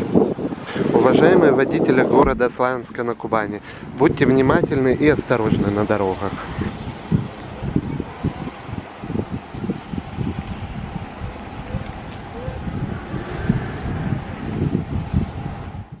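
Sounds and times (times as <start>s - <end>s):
wind buffeting microphone: 0.0s - 16.0s
cars driving past: 5.2s - 15.9s.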